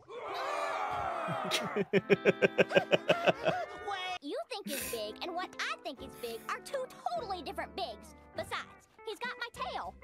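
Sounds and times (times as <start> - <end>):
man laughing hard: 1.3 - 3.7.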